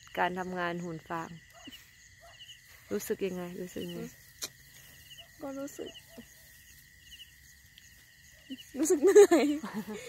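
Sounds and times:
crickets chirping: 0:00.0 - 0:10.0
high-pitched insect trill: 0:00.0 - 0:10.0.

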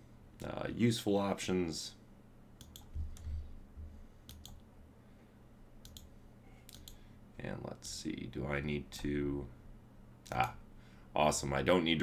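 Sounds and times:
computer input clicks: 0:02.6 - 0:03.3, 0:04.3 - 0:04.6, 0:05.8 - 0:06.1, 0:06.7 - 0:07.0.

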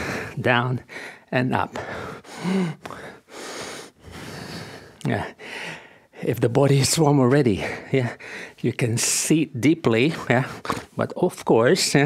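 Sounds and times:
man breathing hard: 0:00.0 - 0:06.2, 0:07.6 - 0:08.6.

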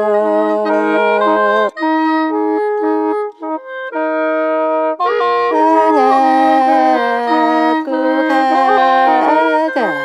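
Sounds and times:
gourd mouth organ playing: 0:00.0 - 0:04.4, 0:05.1 - 0:10.0.

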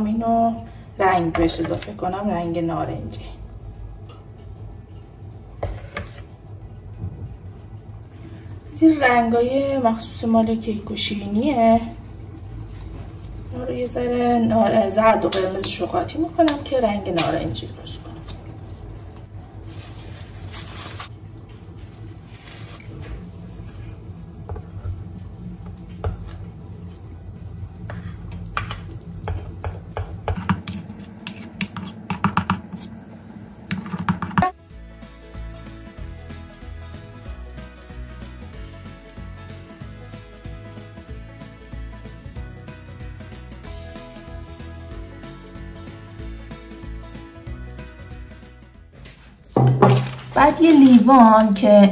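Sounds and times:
spatula scraping ceramic bowl: 0:05.6 - 0:06.3, 0:27.8 - 0:28.8, 0:30.3 - 0:32.0
background music: 0:34.4 - 0:51.8.

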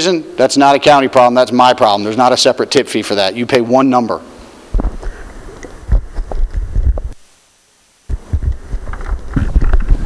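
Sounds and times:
microphone handling thumps: 0:04.7 - 0:07.2, 0:08.1 - 0:10.0.

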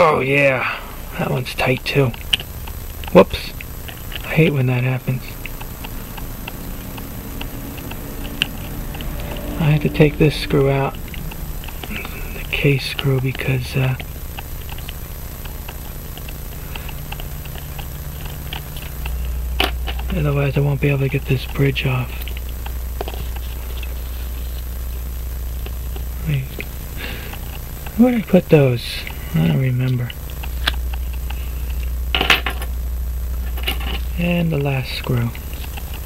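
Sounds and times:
steady low hum: 0:00.0 - 0:36.0.

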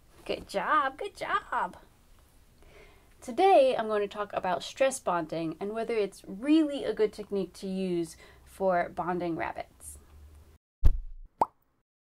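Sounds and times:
sharp low thump: 0:10.8 - 0:11.3.

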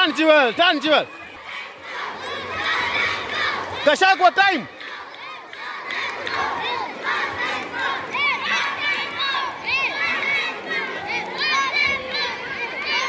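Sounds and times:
crowd of children shouting and cheering: 0:00.0 - 0:13.0.

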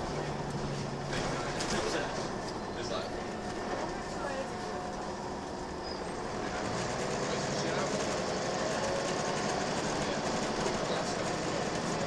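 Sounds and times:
bus diesel engine running: 0:00.0 - 0:12.0
road noise: 0:00.0 - 0:12.0.

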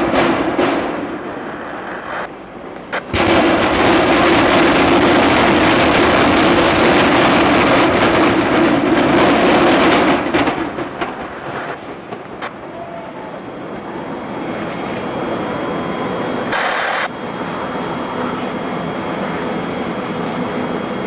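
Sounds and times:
demolition charge bang: 0:00.0 - 0:02.0, 0:02.9 - 0:12.5
building collapsing debris crashing: 0:03.1 - 0:12.4.

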